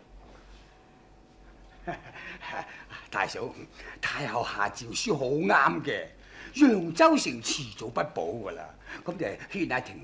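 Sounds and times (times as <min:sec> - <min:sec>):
man's breathy laugh: 0:01.7 - 0:03.0.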